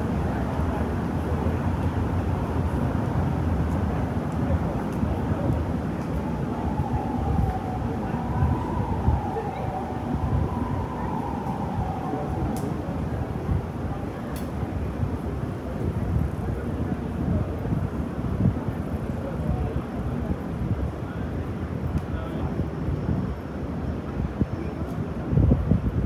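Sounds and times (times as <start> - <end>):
passersby talking: 0.0 - 23.4
traffic noise: 0.0 - 26.0.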